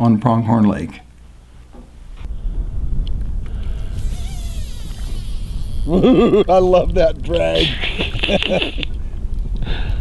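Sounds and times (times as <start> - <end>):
fishing reel drag buzzing: 3.7 - 6.1.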